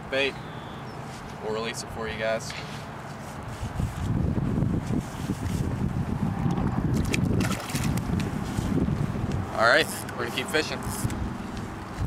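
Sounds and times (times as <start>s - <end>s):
wind buffeting microphone: 3.4s - 10.1s, 10.8s - 12.0s.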